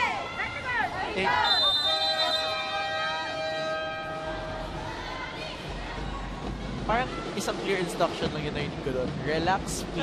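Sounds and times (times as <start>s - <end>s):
crowd noise: 0.0s - 10.0s
arena buzzer horn tone: 1.4s - 4.7s.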